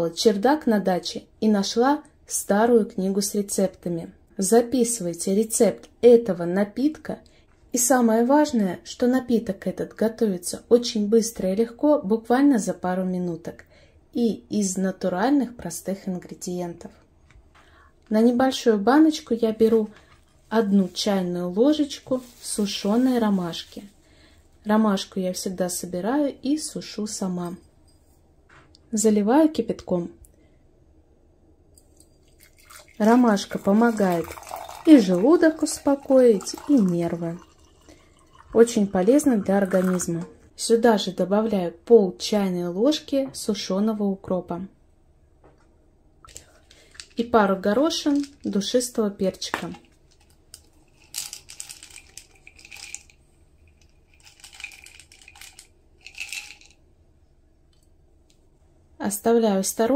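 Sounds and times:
spice berries rattling in jar: 32.2 - 40.3, 46.6 - 56.8
water pouring from kettle: 32.2 - 40.4, 51.0 - 56.8.

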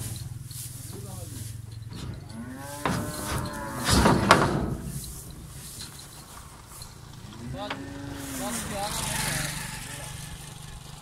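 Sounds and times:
cow mooing: 2.0 - 5.0, 7.2 - 10.2.

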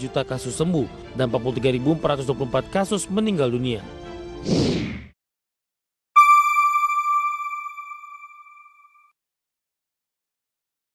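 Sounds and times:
bell-like chime: 6.2 - 9.1.

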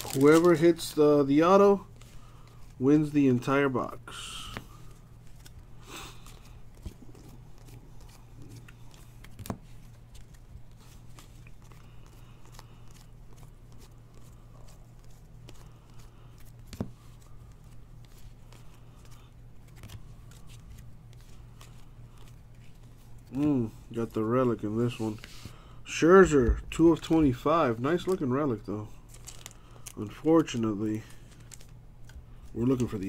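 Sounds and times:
steady low hum: 0.0 - 33.0
trading cards rustling: 0.0 - 33.0.

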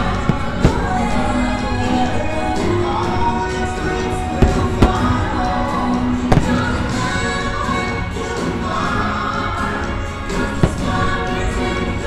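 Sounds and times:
firework bangs: 0.0 - 7.9, 10.4 - 11.9
choral music with singing: 0.0 - 12.0.

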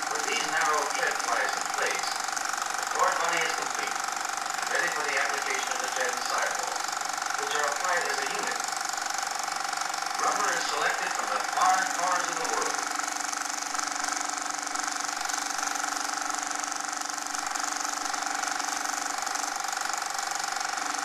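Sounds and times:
muffled man narrating: 0.1 - 2.2, 2.9 - 4.0, 4.7 - 6.8, 7.4 - 8.6, 10.2 - 12.8
steady hum and hiss: 0.1 - 8.8, 10.2 - 13.7.

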